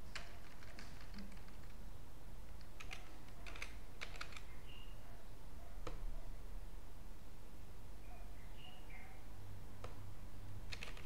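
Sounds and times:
keyboard key clicks: 2.6s - 4.5s, 10.7s - 11.0s.

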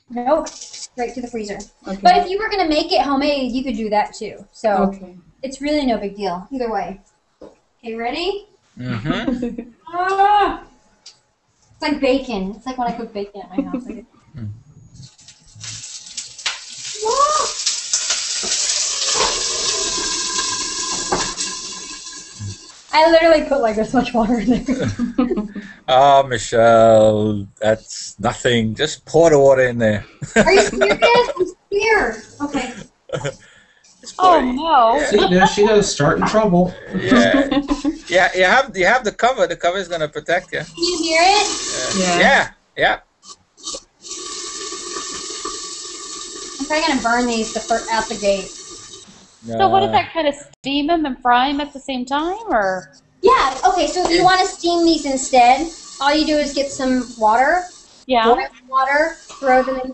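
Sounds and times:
person exclaiming: 8.8s - 9.4s, 17.0s - 17.6s, 25.6s - 28.9s, 29.6s - 31.5s, 32.4s - 33.4s, 34.1s - 39.3s, 41.7s - 42.5s, 49.5s - 50.1s
water sizzling in hot skillet: 15.1s - 24.8s, 40.6s - 42.4s, 43.2s - 49.5s, 53.2s - 59.9s.

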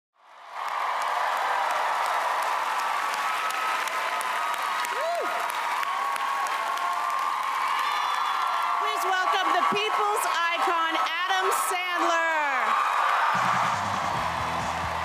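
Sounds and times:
audience applauding and cheering: 0.2s - 15.0s.

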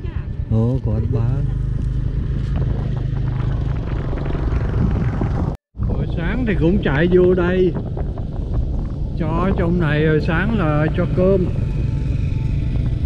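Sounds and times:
motorbike engine at low revs: 1.0s - 5.6s.

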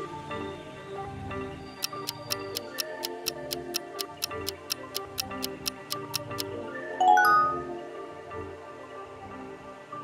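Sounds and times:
light background music: 0.0s - 10.0s
timer ticking: 1.8s - 6.5s.

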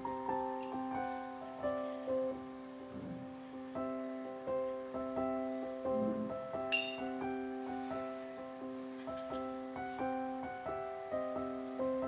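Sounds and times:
soft piano music: 0.0s - 12.0s
sharp ringing clink: 6.7s - 7.1s.

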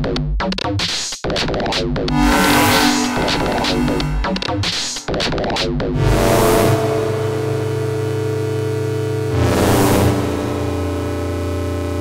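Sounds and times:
low bass note: 2.1s - 5.2s, 6.0s - 9.4s
synthesizer drone: 2.1s - 12.0s.

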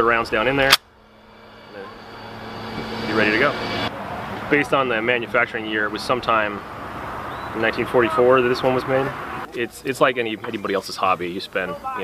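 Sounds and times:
steady outdoor rumble: 0.0s - 12.0s.

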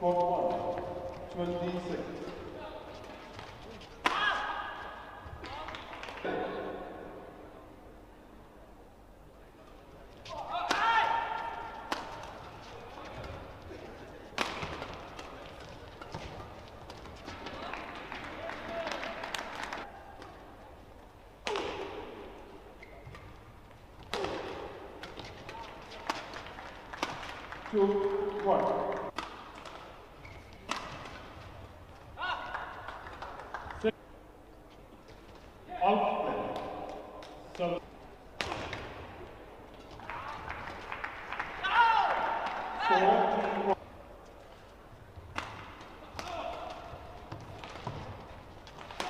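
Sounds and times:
racket striking shuttlecock: 3.4s - 4.7s, 10.6s - 12.4s, 14.3s - 17.0s, 21.4s - 22.3s, 24.0s - 27.5s, 28.6s - 30.0s, 30.6s - 31.4s, 38.4s - 39.1s, 45.3s - 49.0s
shoes squeaking on court: 22.7s - 24.1s, 29.6s - 32.1s.

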